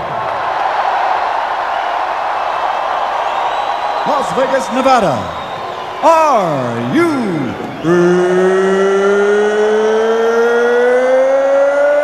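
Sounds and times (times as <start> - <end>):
man's drawn-out announcer call: 4.0 - 10.6.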